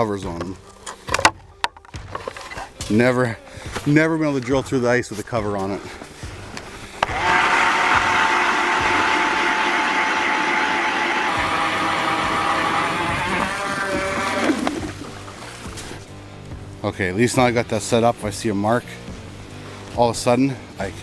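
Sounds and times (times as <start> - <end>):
blades grinding ice: 6.8 - 16.1
electric ice auger drilling: 7.0 - 15.9.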